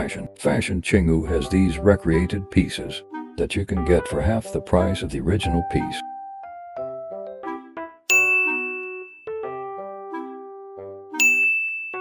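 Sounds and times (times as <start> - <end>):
plucked bell-like background music: 7.2 - 10.4, 11.1 - 12.0
loud bright dings: 8.1 - 9.3, 11.2 - 12.0.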